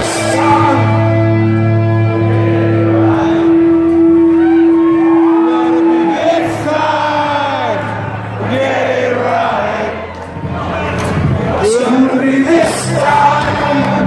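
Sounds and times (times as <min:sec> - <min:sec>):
crowd singing along: 0:00.0 - 0:04.6, 0:05.5 - 0:14.0
live rock band playing loud: 0:00.0 - 0:06.0
bass guitar: 0:00.0 - 0:14.0.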